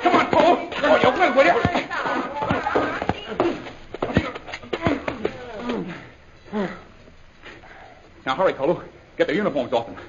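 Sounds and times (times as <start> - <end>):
thuds and blows: 0.0 - 5.9
people grunting: 0.0 - 8.0.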